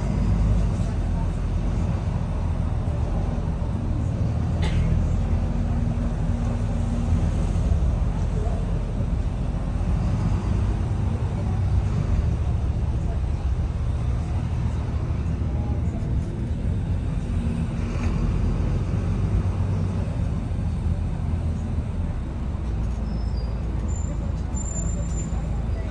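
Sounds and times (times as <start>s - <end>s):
bus diesel engine droning: 0.0s - 25.9s
road noise: 0.0s - 25.9s.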